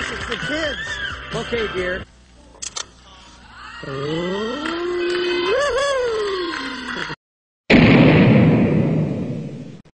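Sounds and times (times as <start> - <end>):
voice holding long ohhh: 3.6 - 7.1.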